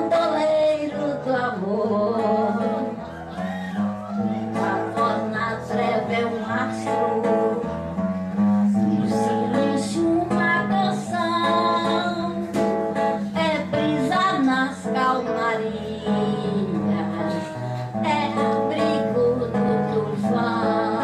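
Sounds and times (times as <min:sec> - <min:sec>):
acoustic guitar: 0:00.0 - 0:21.0
woman singing into a microphone: 0:00.0 - 0:21.0.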